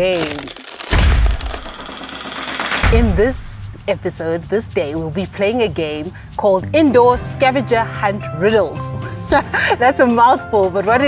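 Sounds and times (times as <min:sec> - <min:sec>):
deep impact hit: 0:00.8 - 0:01.9.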